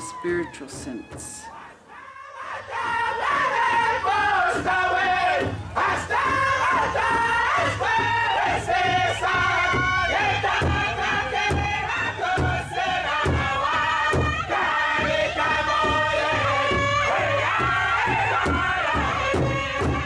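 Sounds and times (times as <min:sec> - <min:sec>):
steady drumbeat: 0:00.0 - 0:01.6, 0:02.7 - 0:20.0.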